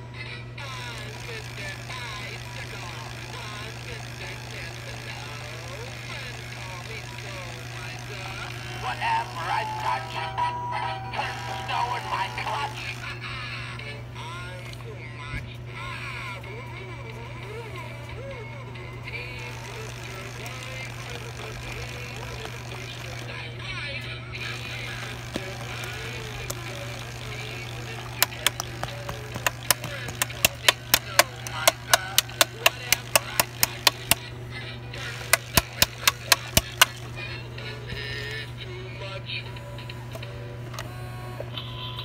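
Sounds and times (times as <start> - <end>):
steady low hum: 0.0 - 42.0
toy playing tinny song with singing: 0.0 - 42.0
sharp clicks: 24.4 - 34.3, 35.0 - 37.2.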